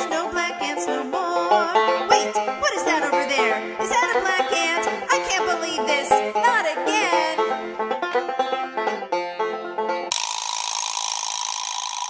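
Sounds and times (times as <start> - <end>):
music: 0.0 - 10.1
film projector running: 10.1 - 12.0.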